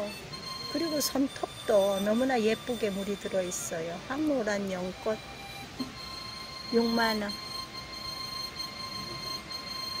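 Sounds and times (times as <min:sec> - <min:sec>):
faint hiss: 0:00.0 - 0:10.0
high steady held tones: 0:00.0 - 0:10.0.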